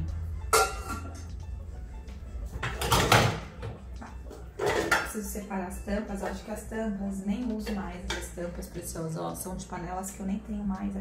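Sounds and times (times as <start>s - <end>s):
pots and lids clattering: 0.5s - 1.3s, 2.6s - 3.8s, 4.5s - 5.2s.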